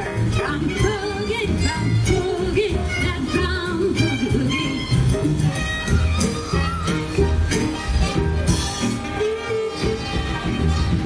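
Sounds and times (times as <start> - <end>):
female singer: 0.0 - 5.0
swing orchestra playing: 0.0 - 11.0
violins: 0.0 - 11.0.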